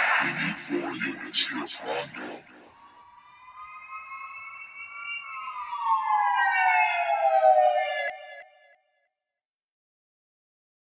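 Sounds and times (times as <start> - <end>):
emergency vehicle siren wailing: 2.8 - 8.8.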